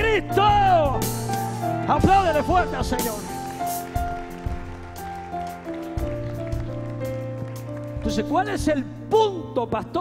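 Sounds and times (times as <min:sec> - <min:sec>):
music of sustained chords: 0:01.0 - 0:10.0
congregation applauding: 0:01.4 - 0:09.0.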